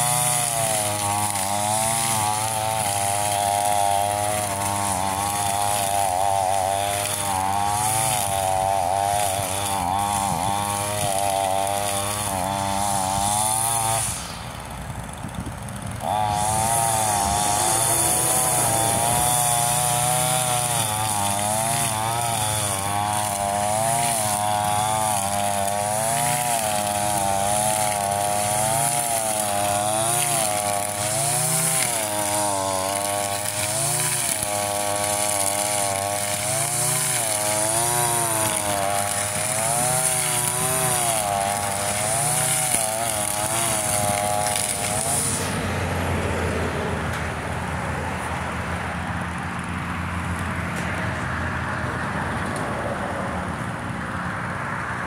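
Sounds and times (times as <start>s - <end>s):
string trimmer engine running hard: 0.0s - 55.0s.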